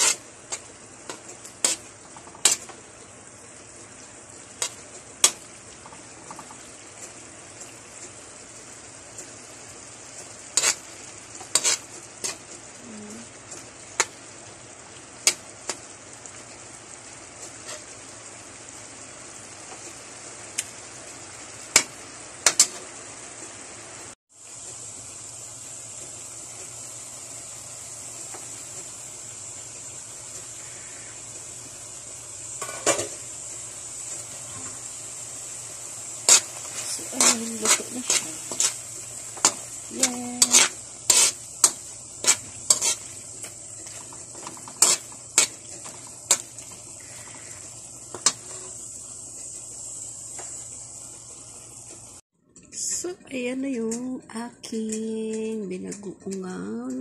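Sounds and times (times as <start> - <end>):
meat sizzling in a wok: 0.0 - 52.3.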